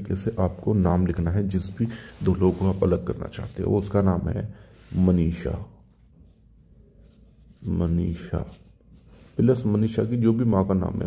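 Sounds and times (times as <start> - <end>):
man speaking: 0.0 - 5.9, 7.6 - 8.8, 9.4 - 11.0.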